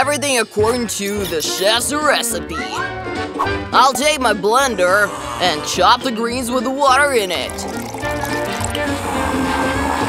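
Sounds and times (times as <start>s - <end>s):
background music: 0.0s - 10.0s
liquid pouring into blender jar: 7.3s - 9.6s.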